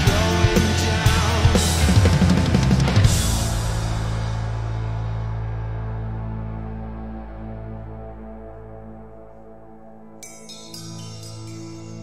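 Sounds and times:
rock band playing: 0:00.0 - 0:06.5
held chord ringing: 0:05.8 - 0:12.0.

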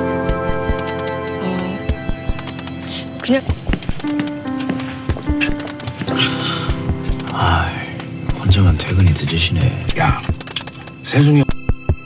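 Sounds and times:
dramatic background music: 0:00.0 - 0:12.0.

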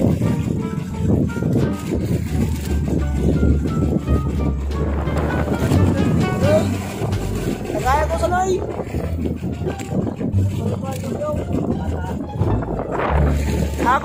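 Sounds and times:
background music: 0:00.0 - 0:14.0
steady low rumble: 0:01.8 - 0:10.9
person's voice: 0:05.7 - 0:06.9, 0:07.6 - 0:08.8, 0:13.7 - 0:14.0.

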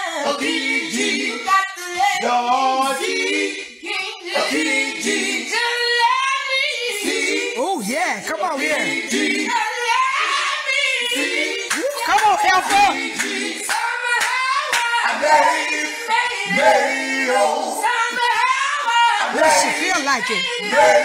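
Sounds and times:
voices singing a cappella: 0:00.0 - 0:21.0
voice singing a vocal run: 0:16.4 - 0:21.0.

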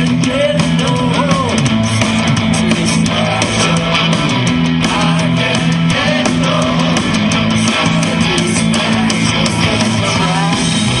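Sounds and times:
steady drum beat: 0:00.0 - 0:11.0
strummed electric guitar: 0:00.0 - 0:11.0.

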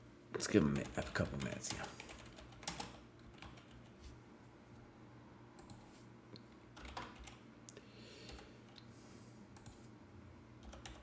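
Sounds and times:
low steady hum: 0:00.0 - 0:11.0
computer keyboard keystrokes: 0:00.8 - 0:03.9, 0:05.6 - 0:05.9, 0:06.8 - 0:07.4, 0:10.6 - 0:11.0.

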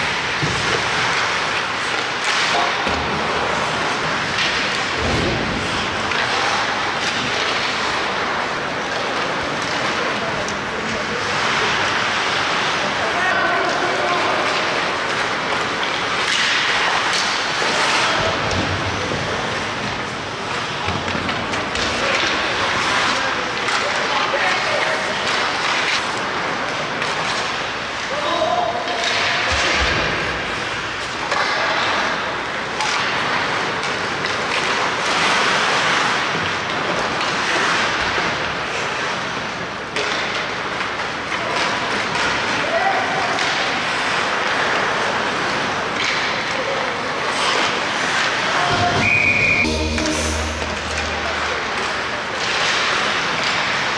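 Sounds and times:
skates scraping on ice: 0:00.0 - 0:28.2, 0:29.0 - 0:53.9.

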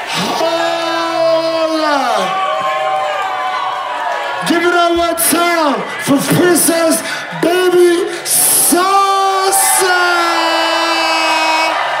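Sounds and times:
club crowd cheering: 0:00.0 - 0:12.0
person yelling: 0:00.1 - 0:02.4.

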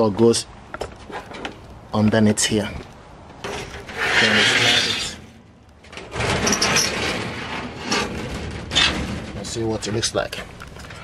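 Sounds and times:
sliding door scraping on metal track: 0:03.4 - 0:10.1.

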